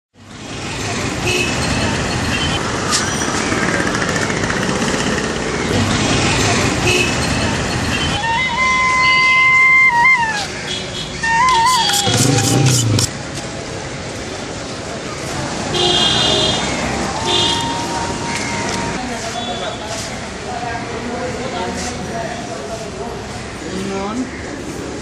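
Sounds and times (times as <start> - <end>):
heavy street traffic engines: 0.1 - 25.0
wavering horn toots: 8.0 - 13.1.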